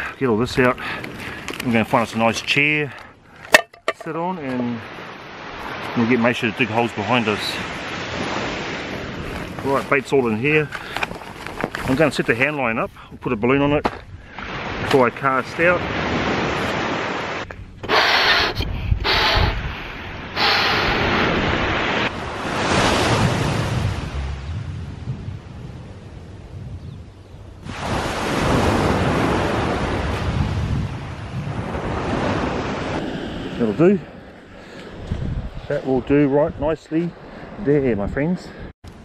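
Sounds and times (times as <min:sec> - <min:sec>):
surf washing up a beach: 0:04.3 - 0:12.5, 0:14.3 - 0:17.5, 0:18.4 - 0:26.0, 0:27.6 - 0:36.4
wind buffeting microphone: 0:17.6 - 0:39.0.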